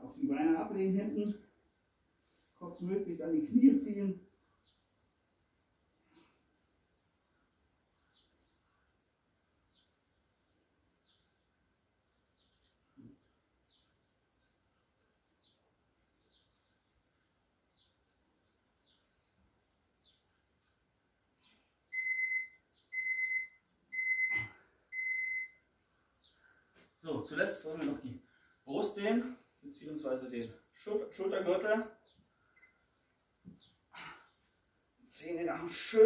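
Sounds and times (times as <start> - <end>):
electronic timer beeps: 21.9 - 25.6
faint short chirps: 32.5 - 32.9.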